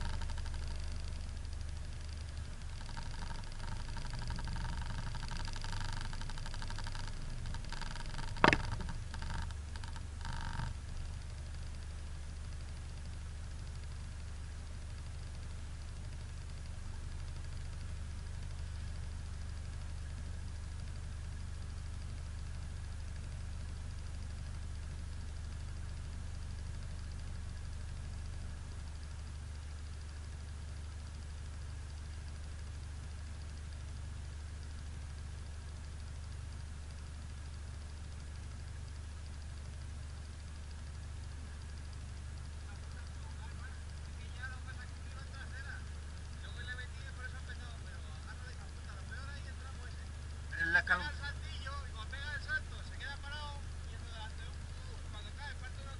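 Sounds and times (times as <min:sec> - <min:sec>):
light rattling: 0:00.0 - 0:11.4
engine idling: 0:00.0 - 0:55.9
sharp knock: 0:08.3 - 0:09.0.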